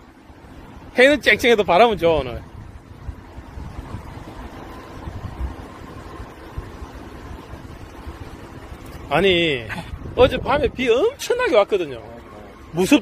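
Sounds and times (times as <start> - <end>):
wind buffeting microphone: 0.0 - 11.6.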